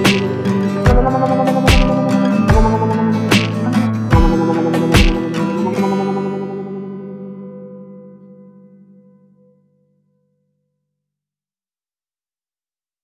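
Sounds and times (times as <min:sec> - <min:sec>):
acoustic guitar strumming: 0:00.0 - 0:09.8.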